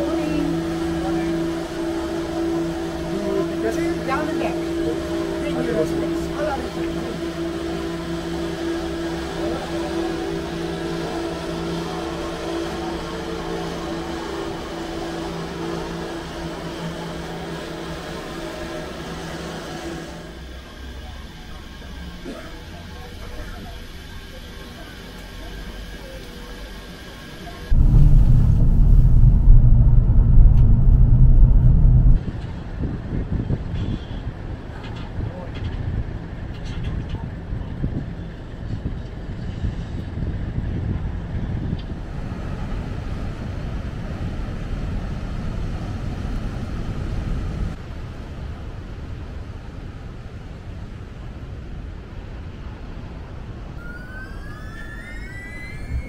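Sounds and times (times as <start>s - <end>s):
cable car rising whine: 0.0s - 32.8s, 36.1s - 56.0s
low rumbling noise: 27.7s - 33.1s.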